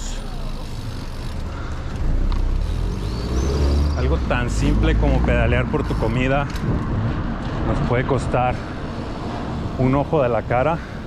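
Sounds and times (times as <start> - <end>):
road noise: 0.0 - 11.0
car driving close by: 2.1 - 5.4
low wind rumble: 3.8 - 11.0.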